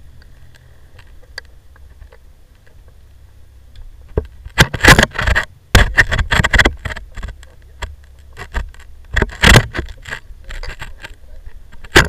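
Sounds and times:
scraping against microphone: 4.3 - 12.0.

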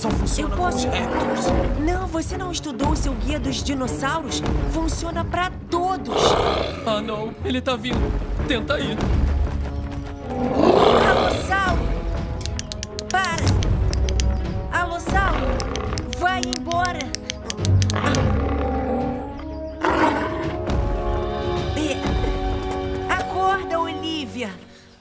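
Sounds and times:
dramatic background music: 0.0 - 25.0
dinosaur roar: 0.6 - 1.8, 6.1 - 7.3, 10.2 - 11.9, 17.9 - 20.8.

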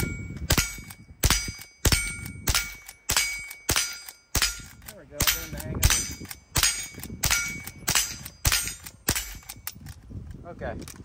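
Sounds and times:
steel targets ringing: 0.0 - 9.5.

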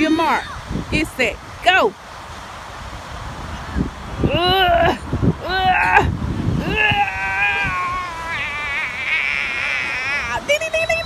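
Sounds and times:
child crying out high-pitched: 4.6 - 10.5.

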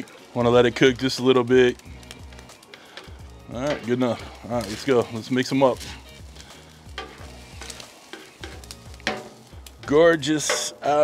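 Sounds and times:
food sizzling lightly: 0.0 - 11.0
spatula scraping griddle: 0.0 - 11.0.

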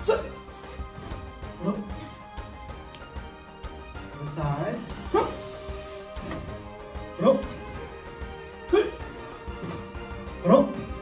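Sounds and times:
man's martial arts shout: 0.0 - 0.4, 8.7 - 9.0
background music: 0.0 - 11.0.

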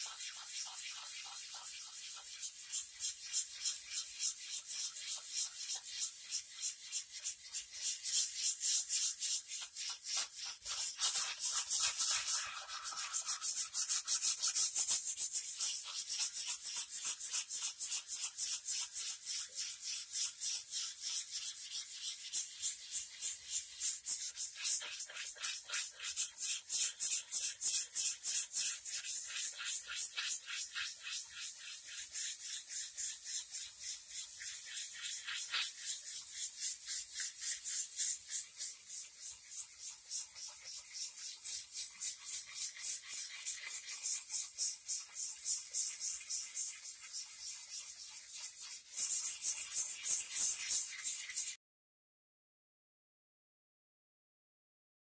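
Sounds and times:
sandpaper rasping on wood: 0.0 - 51.6.

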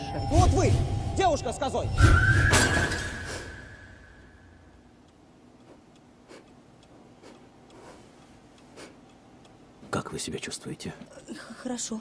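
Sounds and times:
faint slow ticking: 4.1 - 11.2.

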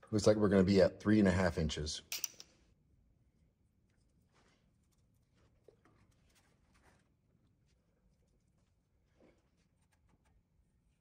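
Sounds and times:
rustles and taps of pipe fittings: 2.1 - 2.8.

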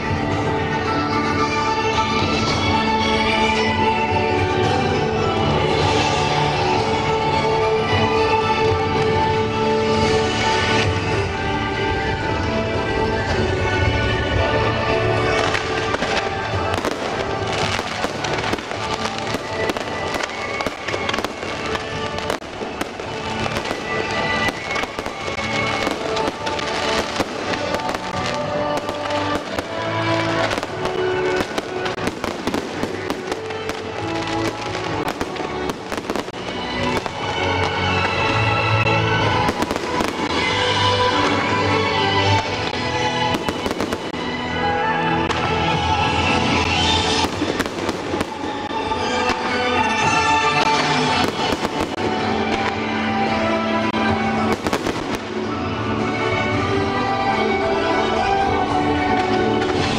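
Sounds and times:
fireworks bangs and crackles: 0.0 - 59.9
music with held notes: 0.0 - 59.9.

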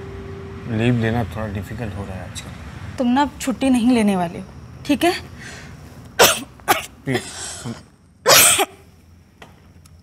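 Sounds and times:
woman coughing: 6.2 - 7.7, 8.3 - 8.8.

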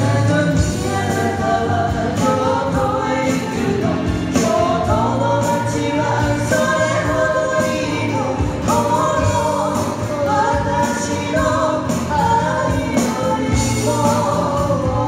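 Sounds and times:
acoustic guitars: 0.0 - 15.0
drums: 0.0 - 15.0
woman singing pop ballad: 0.0 - 15.0.

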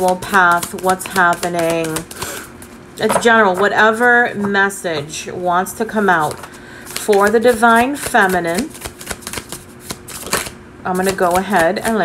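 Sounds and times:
cards being shuffled: 0.0 - 2.5, 6.2 - 12.0.

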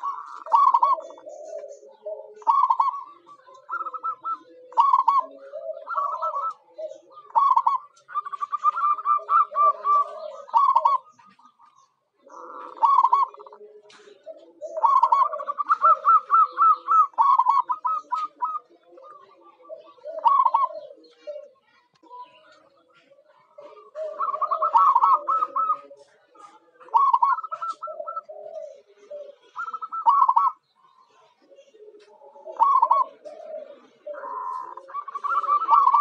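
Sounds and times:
dove cooing: 0.0 - 36.0.

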